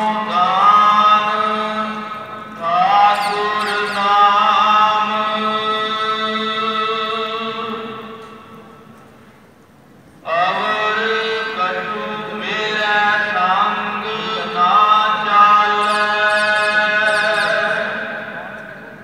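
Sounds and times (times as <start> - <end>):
person chanting: 0.0 - 8.8, 10.2 - 19.0.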